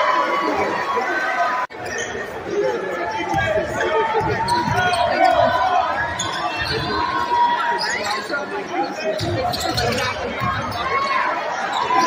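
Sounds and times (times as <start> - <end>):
crowd chatter in echoing gym: 0.0 - 12.0.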